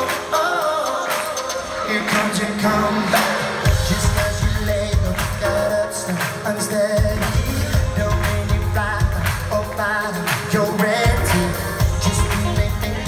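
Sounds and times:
live pop band playing: 0:00.0 - 0:13.0
male lead vocal: 0:00.0 - 0:13.0
steady drum beat: 0:00.0 - 0:13.0
heavy bass: 0:03.6 - 0:05.7, 0:07.0 - 0:10.1, 0:11.0 - 0:13.0.

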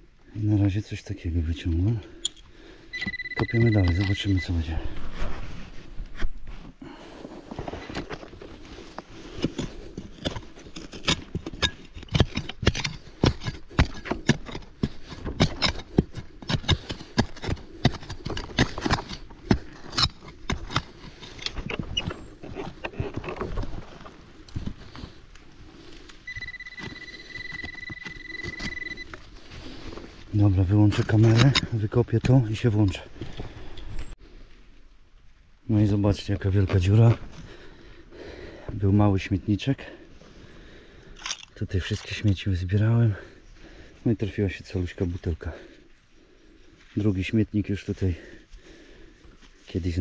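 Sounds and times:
metal detector high tone: 0:02.9 - 0:04.7, 0:26.2 - 0:29.2
trowel chopping and scraping soil: 0:09.2 - 0:23.5, 0:31.0 - 0:32.5.

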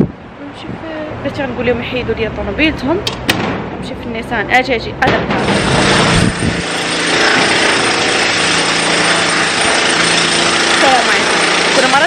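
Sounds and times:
machine humming: 0:05.2 - 0:12.0.

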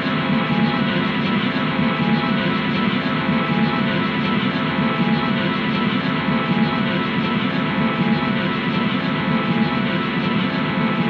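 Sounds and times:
distorted guitar amp drone: 0:00.0 - 0:11.0.

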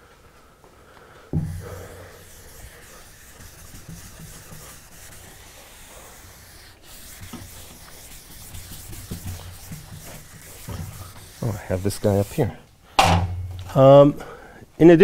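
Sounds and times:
eraser scrubbing a blackboard: 0:01.4 - 0:12.6.

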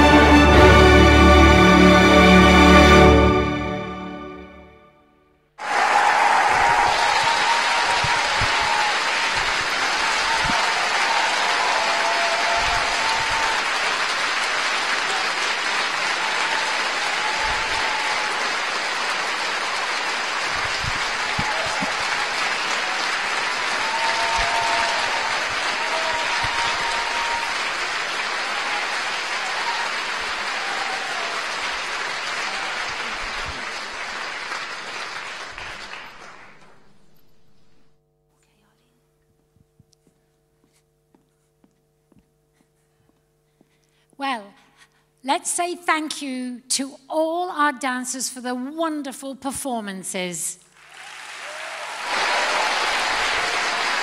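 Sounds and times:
music: 0:00.0 - 0:05.4
voices cheering: 0:05.6 - 0:34.2, 0:50.8 - 0:54.0
audience applauding: 0:05.6 - 0:37.9, 0:50.7 - 0:54.0.

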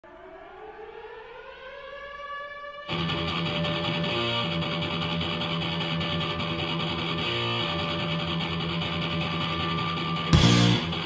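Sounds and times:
air-raid siren winding up: 0:00.1 - 0:11.0.

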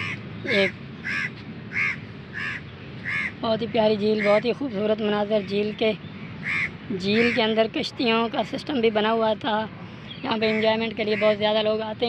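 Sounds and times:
crow cawing: 0:00.0 - 0:03.4, 0:04.2 - 0:04.4, 0:06.4 - 0:07.6.

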